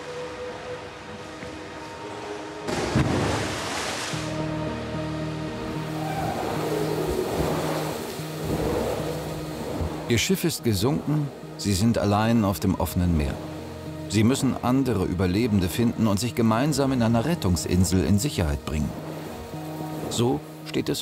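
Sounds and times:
background music: 0:00.0 - 0:21.0
rushing splash of water: 0:01.8 - 0:04.4, 0:05.7 - 0:11.3.

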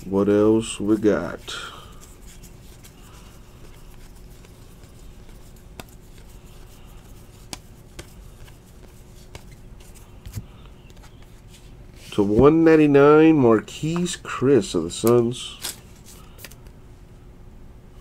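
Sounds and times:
cards sliding and rubbing: 0:00.0 - 0:12.5, 0:15.0 - 0:16.7
faint steady hum: 0:00.0 - 0:18.0
cards clicking when set down: 0:16.4 - 0:16.7.

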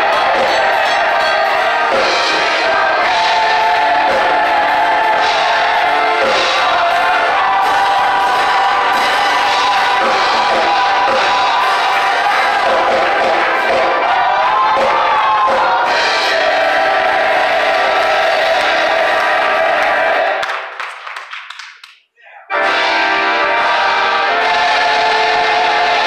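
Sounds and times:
gospel choir singing: 0:00.0 - 0:20.8, 0:22.5 - 0:26.0
instrumental accompaniment: 0:00.0 - 0:20.8, 0:22.5 - 0:26.0.

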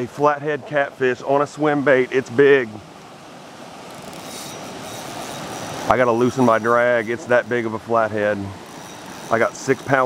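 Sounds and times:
water rushing in creek rapid: 0:00.0 - 0:10.0.

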